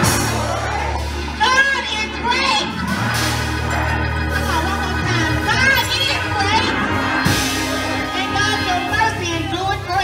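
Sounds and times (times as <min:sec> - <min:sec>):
organ and bass chord: 0:00.0 - 0:10.0.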